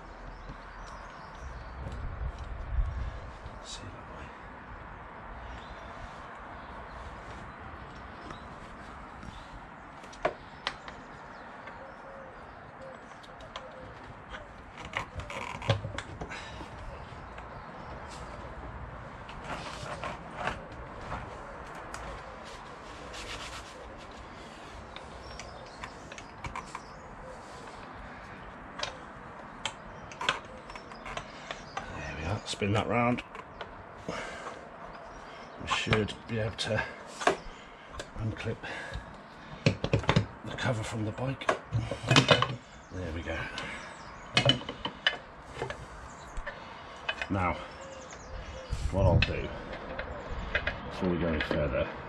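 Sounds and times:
metal parts clicking and knocking: 41.5s - 42.6s.

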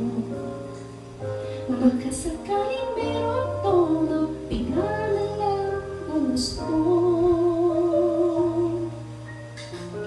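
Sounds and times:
woman singing: 0.0s - 0.7s, 1.7s - 9.0s
instrumental accompaniment: 0.0s - 10.0s.

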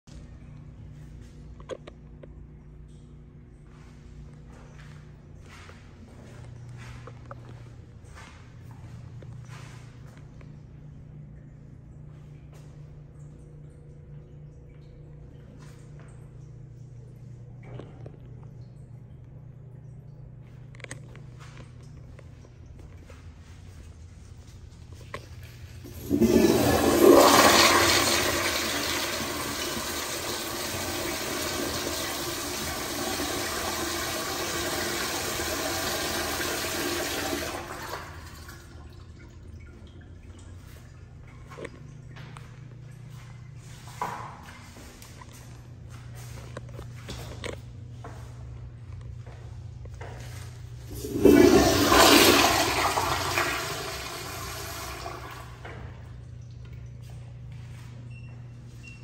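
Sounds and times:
toilet flushing: 24.9s - 45.0s, 50.1s - 57.9s.

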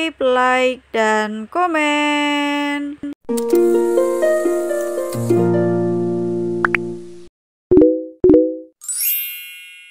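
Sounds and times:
held musical chord: 3.4s - 7.2s
bright chime: 8.8s - 9.9s.

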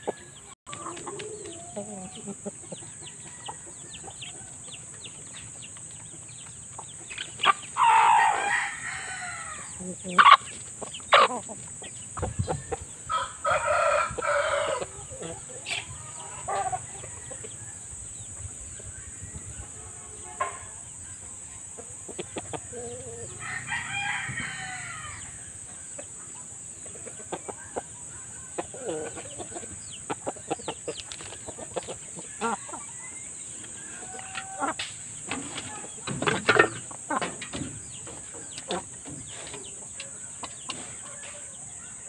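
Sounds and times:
rooster crowing: 7.8s - 10.3s, 13.1s - 15.0s, 22.7s - 25.6s, 32.3s - 34.8s.

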